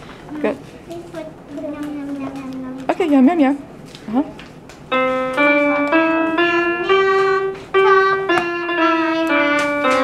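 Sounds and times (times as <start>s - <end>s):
electronic keyboard melody: 4.9s - 10.0s.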